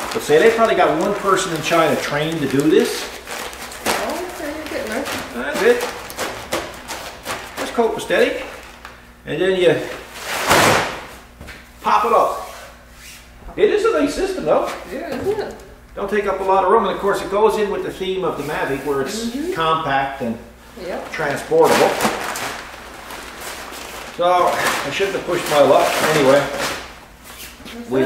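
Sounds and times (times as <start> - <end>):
nylon fabric rustling: 0.0 - 7.6, 21.1 - 27.9.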